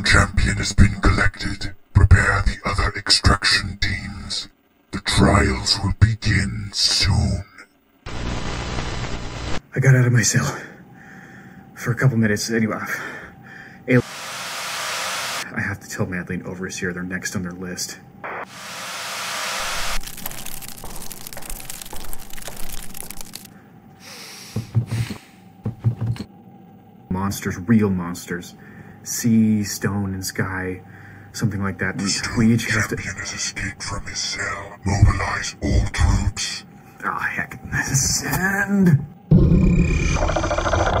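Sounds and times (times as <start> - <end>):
white noise hiss: 0.0 - 10.8, 13.6 - 20.2
distorted electronic buzz: 8.0 - 9.6, 14.0 - 15.5, 18.2 - 23.5
static crackle of clicks: 8.1 - 9.6, 19.6 - 23.5.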